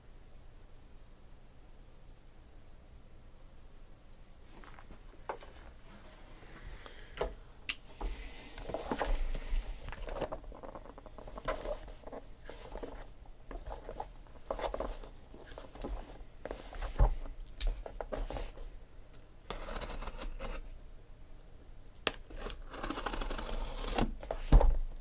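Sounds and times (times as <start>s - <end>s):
cardboard and plastic rustling: 8.6s - 18.7s.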